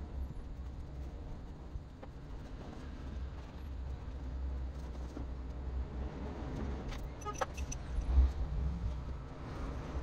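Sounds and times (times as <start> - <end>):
steady low rumble: 0.0 - 6.6.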